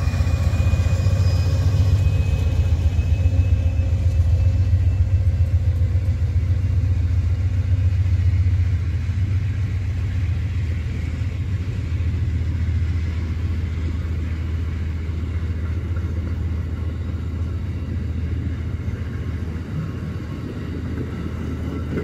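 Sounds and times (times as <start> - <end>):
train coaches rumbling past: 0.0 - 22.0.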